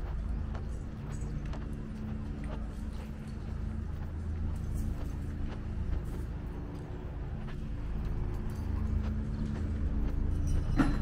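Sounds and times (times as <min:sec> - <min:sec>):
footsteps on paved street: 0:00.0 - 0:11.0
low hum of city and machinery: 0:00.0 - 0:11.0.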